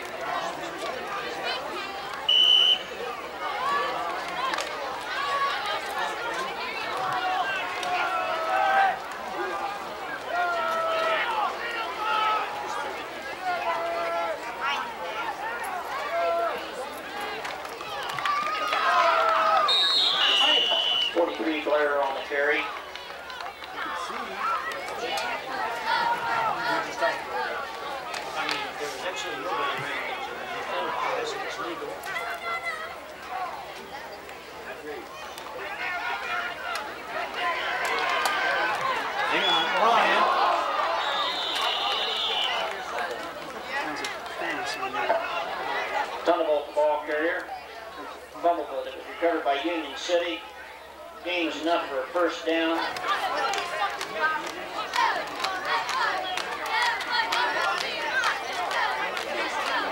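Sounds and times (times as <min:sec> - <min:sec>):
spectators chattering: 0:00.0 - 0:59.9.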